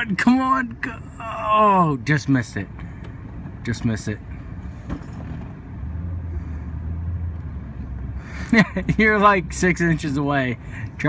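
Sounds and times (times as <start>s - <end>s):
vehicle engine running low: 2.5s - 11.0s.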